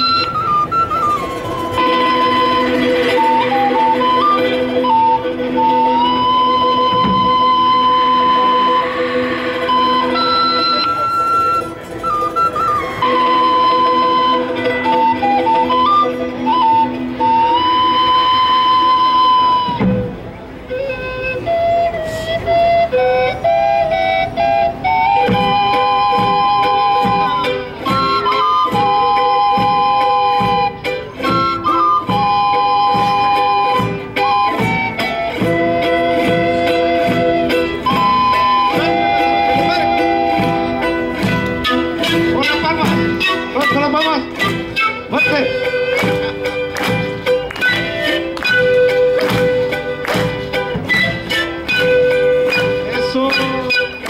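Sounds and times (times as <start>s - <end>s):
flutes playing melody: 0.0s - 54.0s
acoustic guitar strumming: 25.2s - 54.0s.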